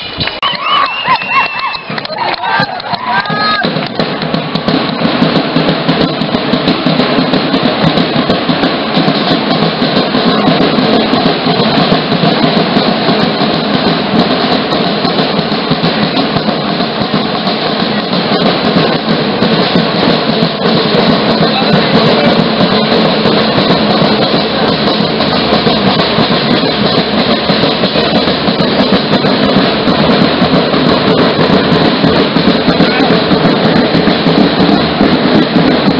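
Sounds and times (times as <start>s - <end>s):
bass and snare drums playing: 0.0s - 35.9s.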